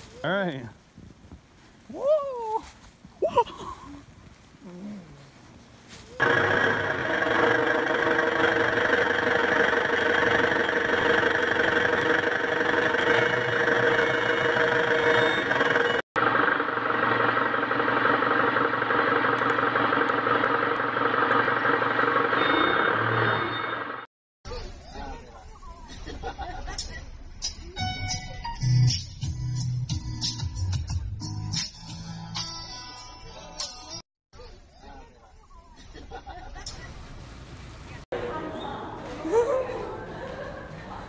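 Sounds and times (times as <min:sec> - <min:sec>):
heavy vehicle engine running: 0:06.2 - 0:24.1.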